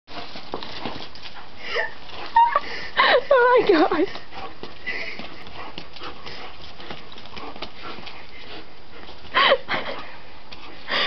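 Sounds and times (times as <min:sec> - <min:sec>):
paws scuffing on wet paving: 0:00.1 - 0:11.0.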